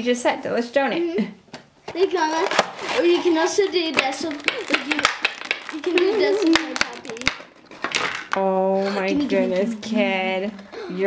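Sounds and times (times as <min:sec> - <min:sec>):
plastic packaging rustling: 0:02.0 - 0:08.5.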